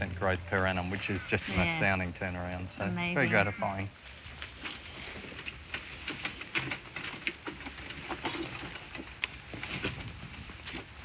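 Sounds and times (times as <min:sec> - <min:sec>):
leafy branches rustling: 0:03.0 - 0:11.0.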